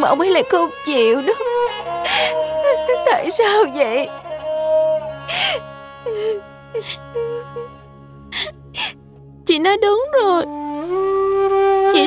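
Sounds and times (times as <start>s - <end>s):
soft background music: 0.0s - 12.0s
girl crying and sobbing: 0.1s - 9.0s.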